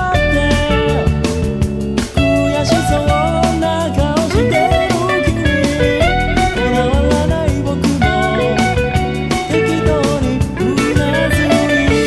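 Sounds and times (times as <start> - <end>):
bass guitar: 0.0 - 12.0
electric guitar lead melody: 0.0 - 12.0
rock drums: 0.0 - 12.0.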